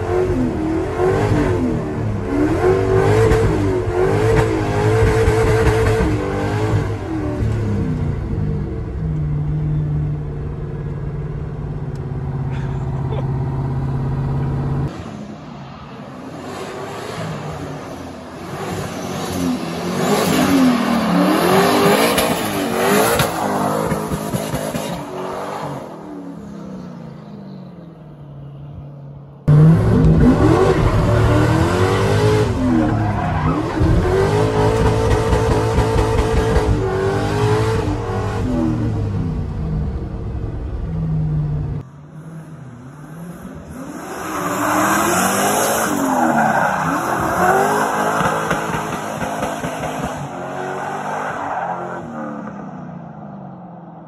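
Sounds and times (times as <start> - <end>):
truck engine revving: 29.4 - 41.8.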